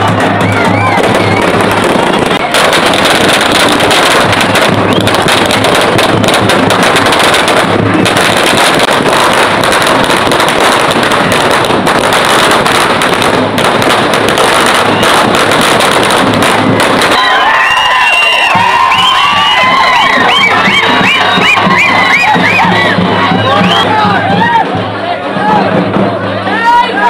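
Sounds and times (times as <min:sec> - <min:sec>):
firecrackers rattling: 0:00.0 - 0:24.0.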